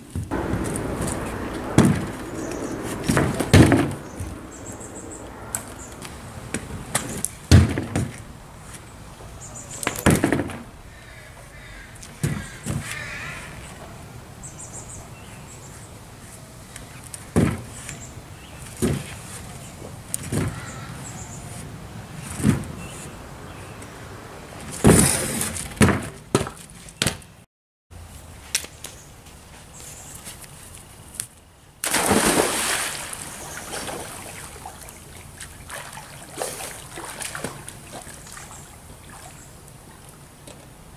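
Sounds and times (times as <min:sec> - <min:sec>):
rushing noise: 0:00.3 - 0:07.5.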